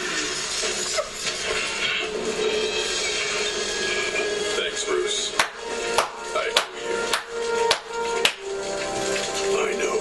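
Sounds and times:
music: 0.0 - 10.0
sharp hand claps: 5.4 - 8.5.

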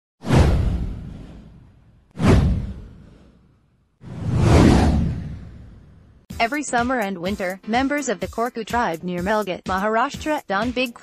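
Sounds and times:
deep boom: 0.2 - 3.4, 4.1 - 6.2
swoosh: 0.2 - 6.2.

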